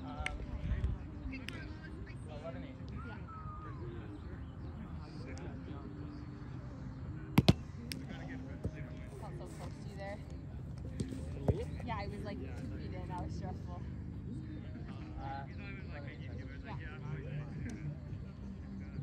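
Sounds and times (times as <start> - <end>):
distant chatter: 1.2 - 19.0
ball smacks on net: 7.4 - 7.6.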